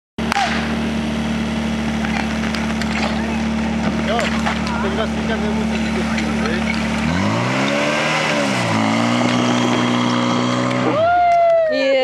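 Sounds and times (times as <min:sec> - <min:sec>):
sharp crack: 0:00.2 - 0:01.0, 0:01.9 - 0:10.9
pump engine idling: 0:00.2 - 0:07.2
people shouting: 0:10.8 - 0:12.0.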